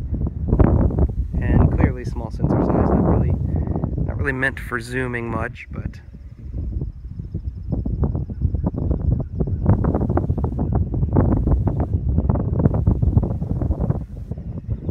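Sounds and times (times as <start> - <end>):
wind buffeting microphone: 0.0 - 14.9.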